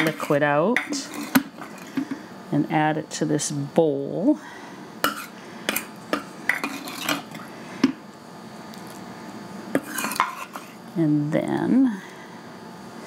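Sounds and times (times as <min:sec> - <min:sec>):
plastic cup scraping stoneware crock: 0:00.0 - 0:02.0.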